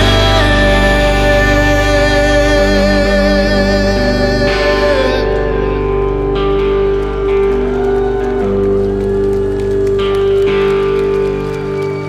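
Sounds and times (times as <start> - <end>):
rock band playing live: 0.0 - 12.0.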